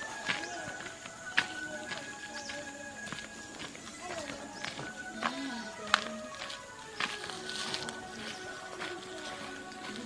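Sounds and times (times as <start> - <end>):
faint wordless melody: 0.0 - 10.0
footsteps on dirt path: 0.0 - 10.0.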